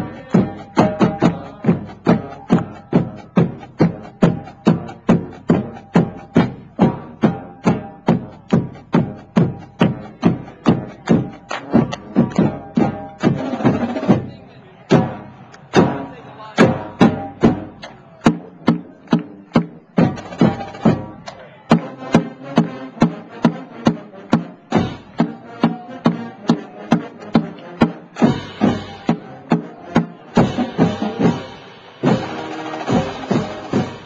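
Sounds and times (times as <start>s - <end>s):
bass drums: 0.0s - 34.0s.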